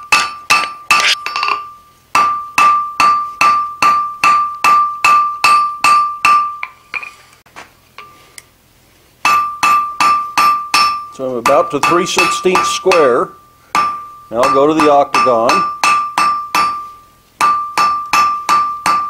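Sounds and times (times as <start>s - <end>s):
hammer striking hot steel: 0.0s - 7.1s, 9.2s - 19.0s
high anvil ring: 0.0s - 7.2s, 9.2s - 19.0s.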